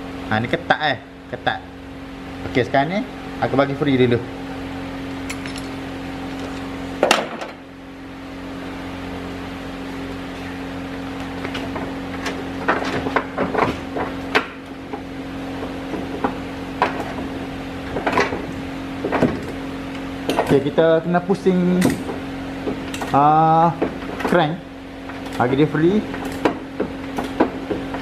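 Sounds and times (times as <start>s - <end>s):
steady low hum: 0.0s - 28.0s.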